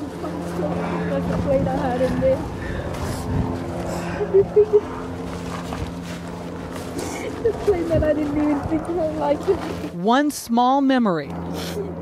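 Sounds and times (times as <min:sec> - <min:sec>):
low mechanical engine hum: 0:00.0 - 0:12.0
wind noise on microphone: 0:01.1 - 0:04.8, 0:07.4 - 0:09.6.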